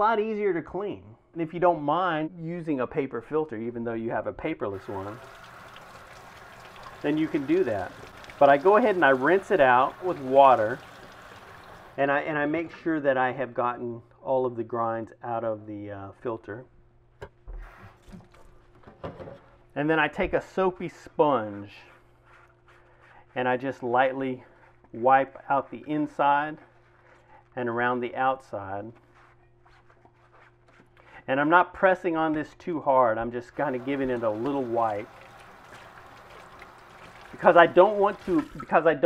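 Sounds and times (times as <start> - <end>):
tap water splashing on filter: 4.8 - 12.0, 33.8 - 38.7.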